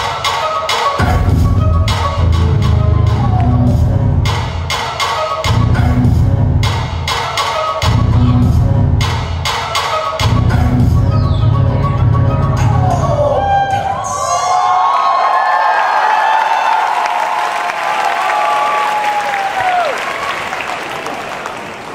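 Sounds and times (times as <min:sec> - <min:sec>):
dance music with heavy bass beat: 0:00.0 - 0:14.2
audience cheering and screaming: 0:13.0 - 0:21.5.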